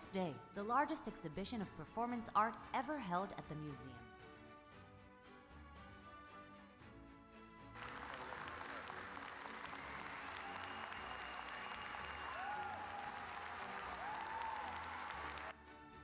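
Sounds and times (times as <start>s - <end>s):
background music: 0.0s - 16.0s
audience applauding: 7.7s - 15.6s.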